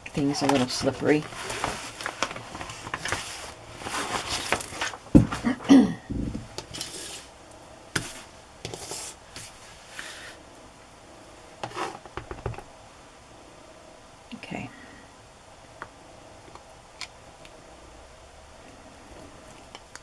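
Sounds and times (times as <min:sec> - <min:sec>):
glossy sheet sliding and rustling: 0:00.4 - 0:05.4, 0:06.6 - 0:07.4, 0:08.0 - 0:10.4.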